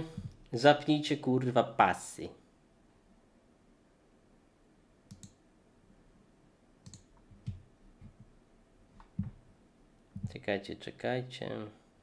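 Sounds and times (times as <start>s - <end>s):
computer mouse clicks: 5.1s - 5.4s, 6.8s - 8.2s.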